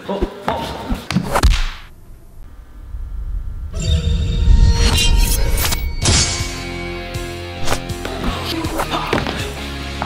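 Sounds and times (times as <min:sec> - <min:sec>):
low rumble: 0:01.8 - 0:06.7.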